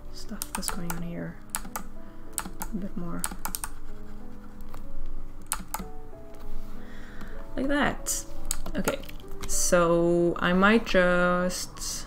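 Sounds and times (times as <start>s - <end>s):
soft piano music: 0.0s - 12.0s
keyboard key clicks: 0.4s - 3.7s, 5.4s - 5.9s.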